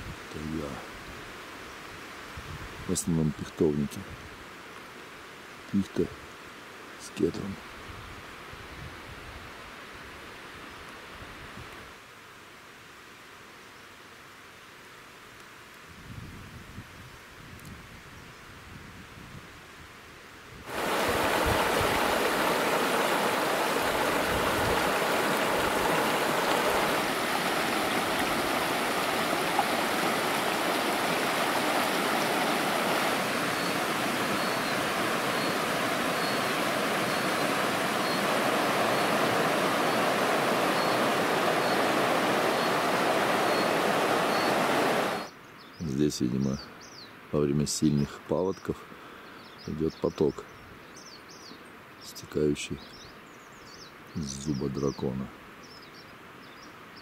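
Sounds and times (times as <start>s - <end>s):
stream rushing over stones: 20.7s - 45.3s.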